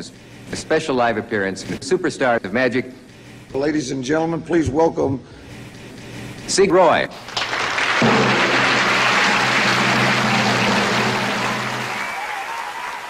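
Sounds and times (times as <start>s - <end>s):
audience applause: 7.3s - 13.0s.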